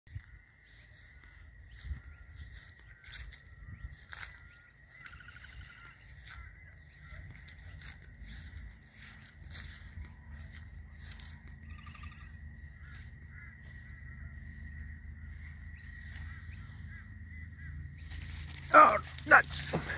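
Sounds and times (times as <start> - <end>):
footsteps on lawn: 0.1 - 17.2, 17.9 - 19.9
faint bird calls: 0.1 - 19.9
outdoor ambience: 0.1 - 19.9.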